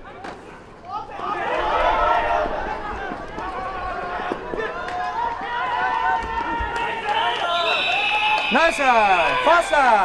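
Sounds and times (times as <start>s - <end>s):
voices shouting: 0.2s - 10.0s
referee's whistle: 7.0s - 10.0s.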